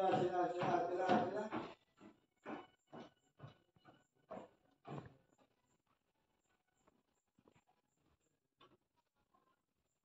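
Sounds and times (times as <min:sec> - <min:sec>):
footsteps on a staircase: 0:00.0 - 0:07.7.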